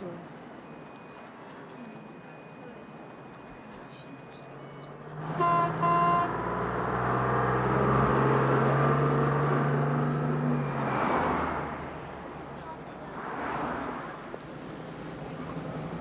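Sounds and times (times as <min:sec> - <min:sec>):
car driving past: 0:05.1 - 0:16.0
vehicle horn toots: 0:05.2 - 0:06.6.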